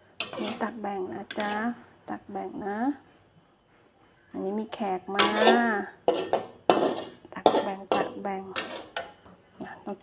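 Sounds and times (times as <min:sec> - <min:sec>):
metal spatula scraping a wok: 0:00.0 - 0:01.8, 0:05.1 - 0:09.2.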